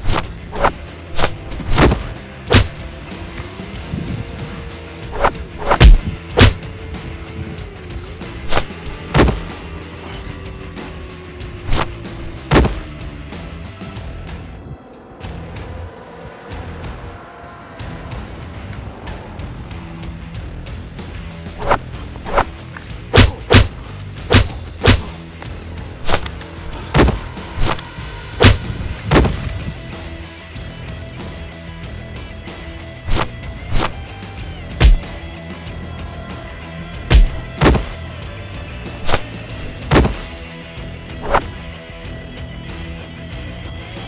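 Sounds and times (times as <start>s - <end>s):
whooshing swishes: 0.0s - 2.9s, 3.9s - 6.6s, 8.4s - 9.6s, 11.6s - 12.9s, 21.6s - 25.2s, 26.0s - 27.8s, 28.4s - 29.7s, 33.1s - 34.0s, 34.8s - 35.1s, 37.1s - 38.0s, 39.0s - 40.2s, 41.2s - 41.5s
background music: 0.0s - 44.0s.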